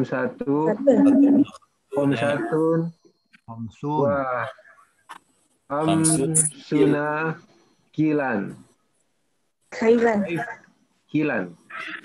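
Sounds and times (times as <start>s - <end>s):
person speaking over video call: 0.0s - 2.9s, 3.5s - 4.7s, 5.7s - 7.4s, 8.0s - 8.6s, 9.8s - 10.6s, 11.2s - 12.0s.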